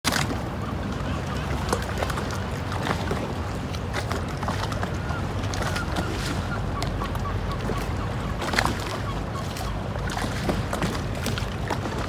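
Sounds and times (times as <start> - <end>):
low rumble of wind: 0.0 - 12.0
water slapping around boats: 0.0 - 12.0.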